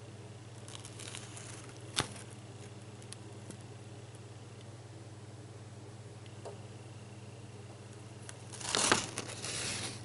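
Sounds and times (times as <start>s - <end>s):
steady low hum: 0.0s - 10.0s
small crackles: 0.5s - 4.2s, 7.9s - 10.0s
paper crinkling: 0.6s - 3.6s, 8.2s - 10.0s.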